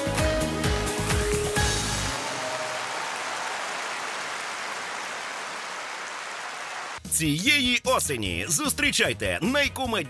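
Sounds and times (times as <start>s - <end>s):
large audience applauding: 1.1s - 7.1s.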